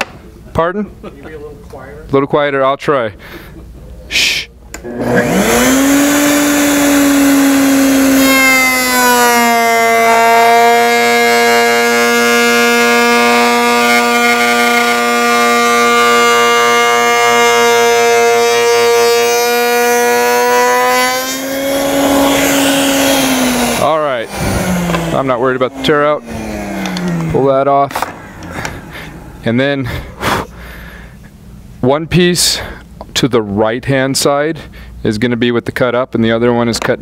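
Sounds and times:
router spinning and cutting wood: 0:04.8 - 0:30.4.

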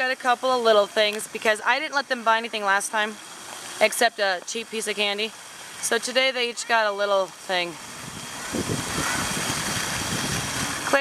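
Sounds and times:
wind buffeting microphone: 0:07.8 - 0:11.0.

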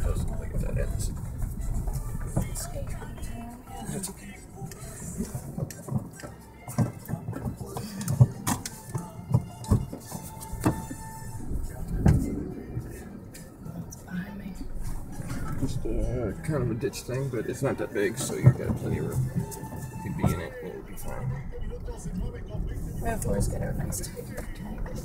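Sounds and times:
car cabin rumble on unpaved road: 0:00.0 - 0:25.0.

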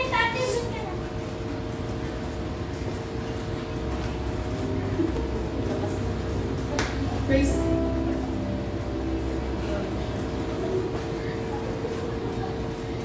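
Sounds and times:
faint background music: 0:00.0 - 0:13.0
steady hum: 0:00.0 - 0:13.0.

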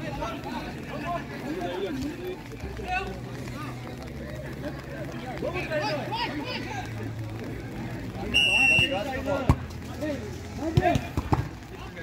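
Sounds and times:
referee's whistle: 0:08.3 - 0:09.1
football being kicked: 0:10.7 - 0:11.5.

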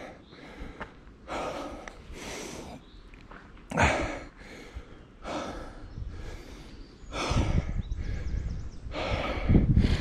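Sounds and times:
person breathing heavily: 0:00.0 - 0:02.9, 0:03.7 - 0:10.0.

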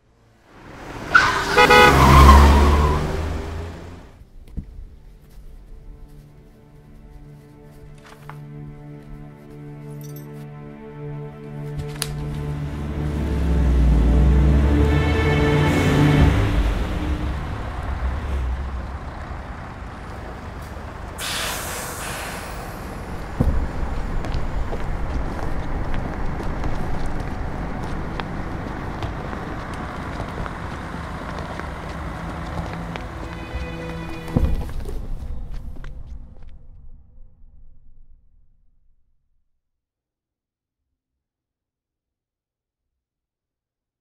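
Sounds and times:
vehicle passing with deep rumble: 0:00.0 - 0:04.3, 0:12.1 - 0:21.2, 0:22.3 - 0:36.4
vehicle horn honks: 0:01.3 - 0:03.6, 0:14.8 - 0:17.6, 0:33.1 - 0:34.6.

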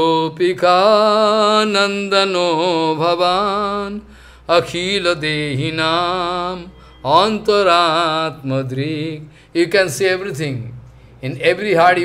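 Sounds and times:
man chanting melodically: 0:00.0 - 0:12.0.

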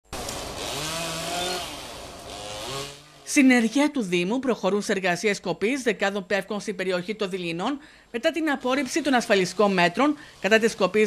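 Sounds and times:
chainsaw cutting branches: 0:00.1 - 0:03.8, 0:08.6 - 0:11.0.

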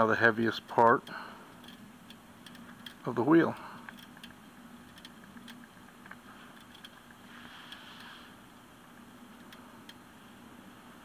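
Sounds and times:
soft hiss: 0:00.0 - 0:11.0.

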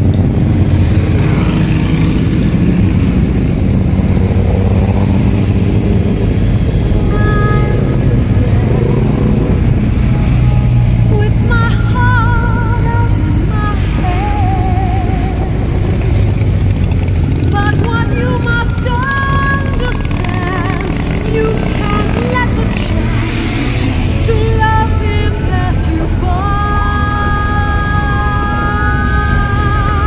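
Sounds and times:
motorcycle engines rumbling: 0:00.0 - 0:30.0
wind: 0:00.0 - 0:30.0
music with singing voice: 0:05.5 - 0:30.0.

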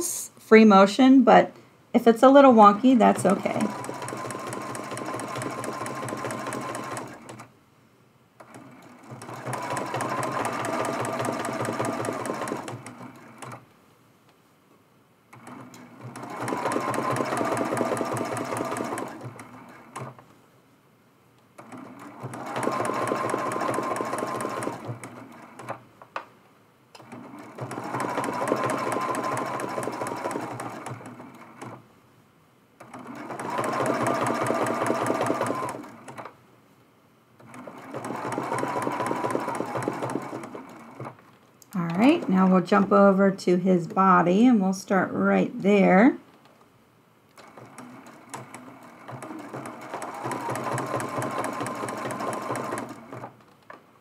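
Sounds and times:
sewing machine motor whine: 0:03.1 - 0:07.5, 0:08.4 - 0:13.6, 0:15.4 - 0:20.2, 0:21.6 - 0:25.8, 0:27.0 - 0:31.8, 0:32.8 - 0:36.2, 0:37.4 - 0:41.1, 0:47.4 - 0:53.3.

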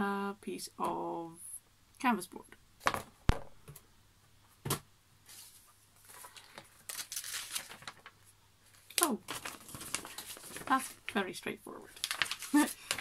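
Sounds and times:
pages turning: 0:05.3 - 0:11.1, 0:11.9 - 0:13.0
paper rustling and crinkling: 0:05.3 - 0:11.2, 0:11.8 - 0:13.0.

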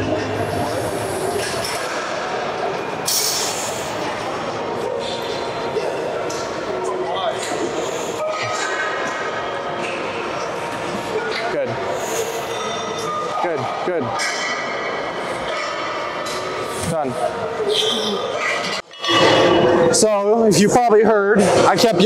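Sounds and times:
background chatter: 0:00.0 - 0:22.0.

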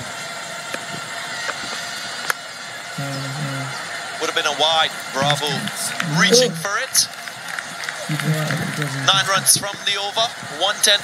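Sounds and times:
match broadcast background: 0:01.1 - 0:11.0
man talking: 0:03.0 - 0:07.1, 0:08.1 - 0:11.0.

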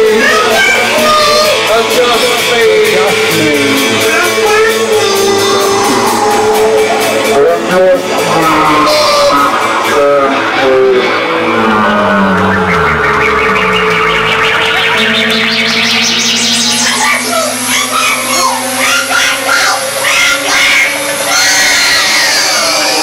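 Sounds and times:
held drone notes: 0:00.0 - 0:23.0
pulsing sweep rising in pitch: 0:00.0 - 0:23.0
warbling chirping electronic squiggles: 0:11.9 - 0:22.9.

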